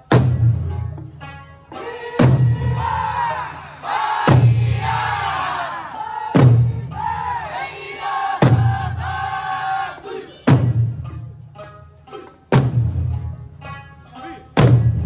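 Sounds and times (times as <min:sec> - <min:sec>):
group shouting calls: 0:01.7 - 0:10.6
large barrel drums struck: 0:02.2 - 0:03.0, 0:04.2 - 0:05.3, 0:06.4 - 0:07.4, 0:08.4 - 0:09.2, 0:12.5 - 0:13.2, 0:14.6 - 0:15.0.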